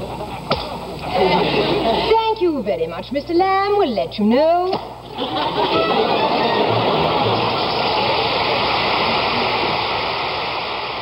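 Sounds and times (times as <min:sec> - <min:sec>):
audience applauding: 0:05.4 - 0:11.0.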